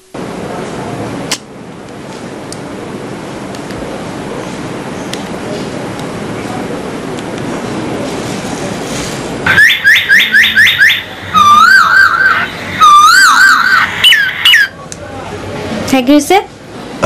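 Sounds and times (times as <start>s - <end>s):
high falling chirps: 9.5s - 14.7s.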